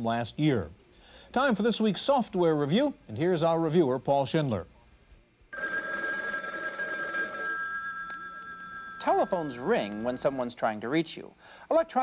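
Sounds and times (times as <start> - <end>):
speech: 1.4 - 4.8, 9.0 - 12.0
telephone ringing: 5.6 - 10.6.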